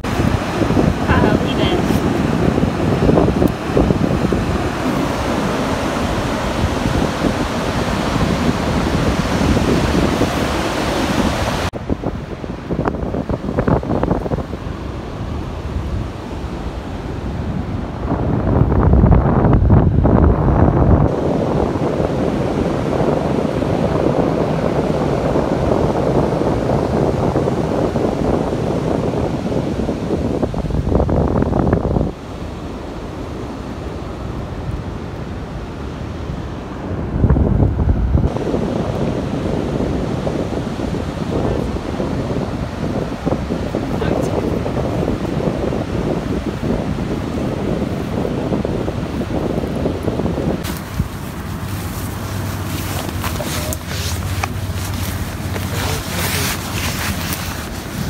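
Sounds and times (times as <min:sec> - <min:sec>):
ocean surf breaking: 0:00.0 - 0:19.0, 0:21.1 - 0:58.0
wind buffeting microphone: 0:00.0 - 0:58.0.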